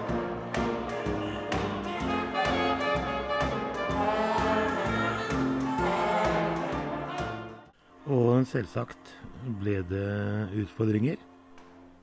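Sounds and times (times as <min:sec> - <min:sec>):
choir singing gospel: 0:00.0 - 0:07.7
jazz brass ensemble: 0:00.0 - 0:07.7
light percussion beat: 0:00.0 - 0:07.7.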